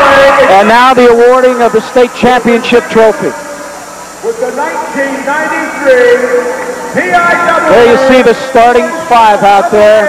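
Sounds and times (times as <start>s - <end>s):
man announcing over public address: 0.0s - 3.6s, 4.2s - 10.0s
crowd hubbub: 0.0s - 10.0s.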